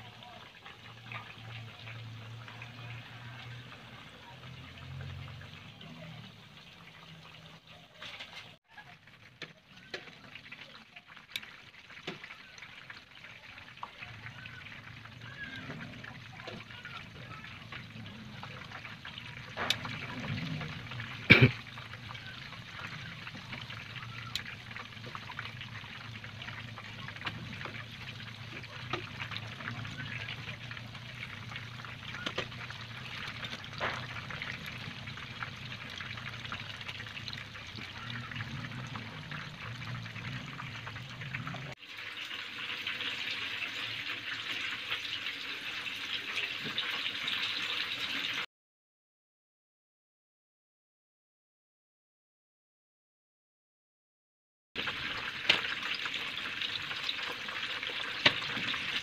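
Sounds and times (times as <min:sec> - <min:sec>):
food deep-frying in oil: 0:00.0 - 0:48.5, 0:54.8 - 0:59.0.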